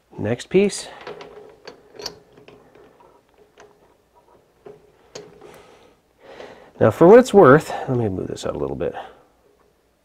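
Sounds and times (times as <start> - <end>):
faint steady hum: 0.0 - 10.0
metallic clicks and taps: 1.0 - 5.6.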